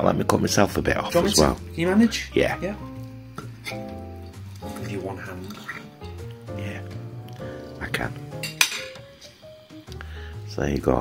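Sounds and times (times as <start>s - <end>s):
soft background music: 0.0s - 11.0s
fork clinking on ceramic plate: 8.4s - 9.0s.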